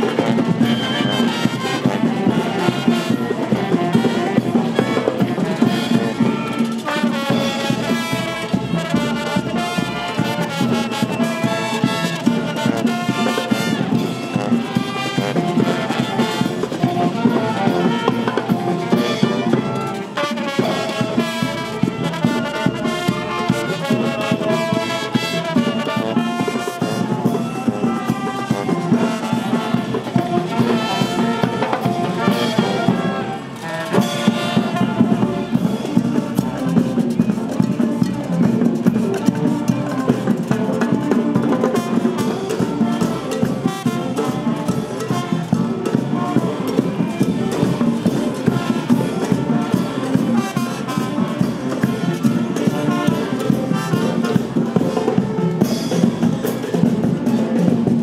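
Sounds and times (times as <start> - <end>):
marching brass band playing: 0.0 - 58.0.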